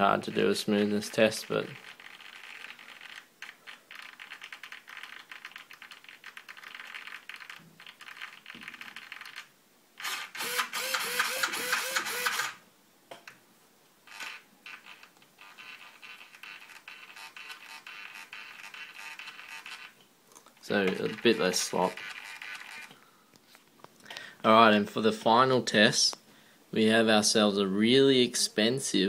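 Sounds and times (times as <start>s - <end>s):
servo buzzing and chattering: 10.0s - 12.6s, 20.8s - 22.9s.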